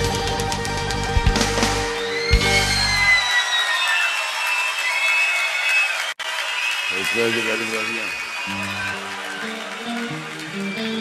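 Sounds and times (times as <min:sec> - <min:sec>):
audience cheering: 0:00.9 - 0:11.0.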